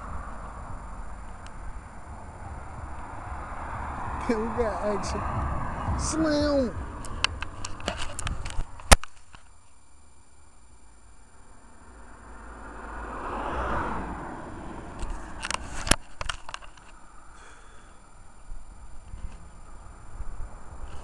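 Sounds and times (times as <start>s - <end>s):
vehicle passing: 0.0s - 7.6s, 11.8s - 15.8s
handheld camera clicks and knocks: 7.0s - 9.5s.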